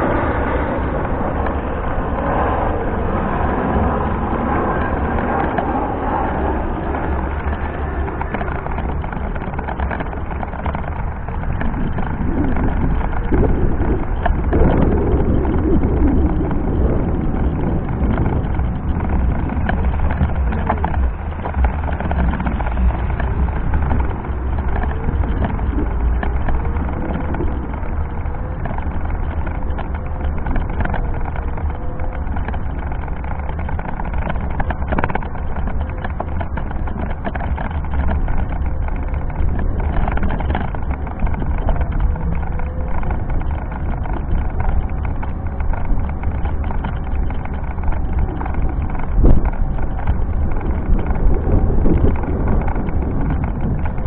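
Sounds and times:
faint wavering whine: 0:00.0 - 0:54.0
wheelchair rolling over brick paving: 0:00.0 - 0:54.0.

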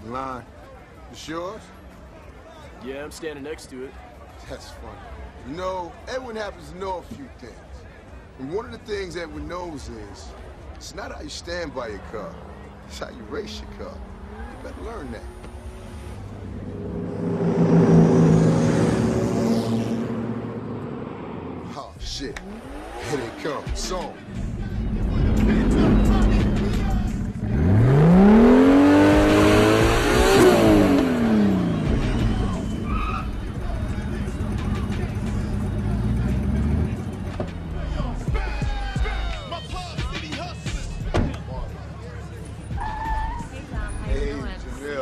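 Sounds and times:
sports car engines revving: 0:12.1 - 0:45.0.

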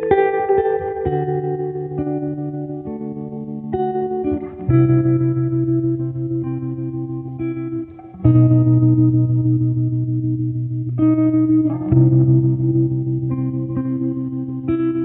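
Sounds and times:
guitar with effects playing chords: 0:00.0 - 0:15.0.

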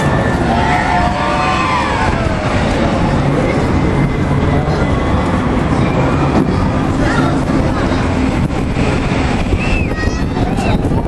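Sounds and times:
faint voices: 0:00.0 - 0:11.0
loud low rumbling: 0:00.0 - 0:11.0.

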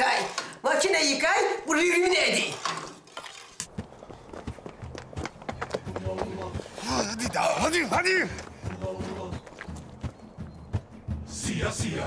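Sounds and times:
people hurrying footsteps: 0:03.7 - 0:11.3.

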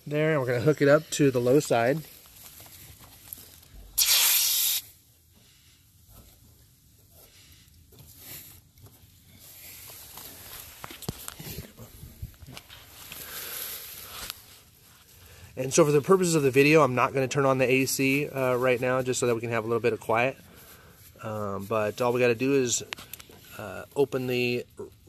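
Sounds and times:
refrigerant hissing: 0:03.9 - 0:05.0.

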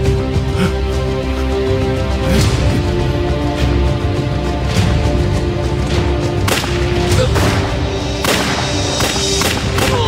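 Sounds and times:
tense drama score: 0:00.0 - 0:10.0
sharp gunshot: 0:08.2 - 0:10.0.

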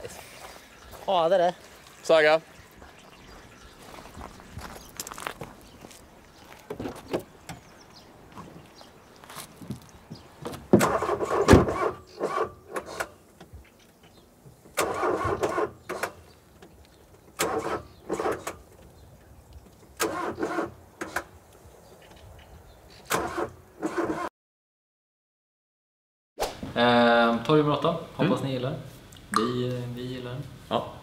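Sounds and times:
car starter motor cranking: 0:10.7 - 0:13.1, 0:14.7 - 0:18.8, 0:20.0 - 0:21.3, 0:23.1 - 0:24.3.

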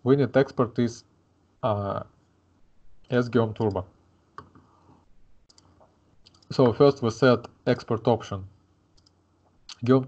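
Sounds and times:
computer mouse clicks: 0:05.4 - 0:06.5, 0:08.9 - 0:10.0.

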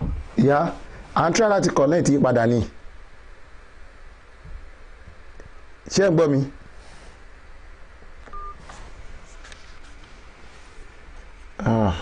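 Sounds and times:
electronic telephone beep: 0:08.3 - 0:08.6.

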